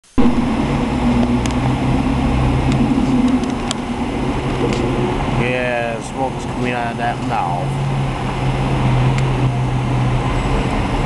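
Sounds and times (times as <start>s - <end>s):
diesel truck engine droning: 0.0s - 11.0s.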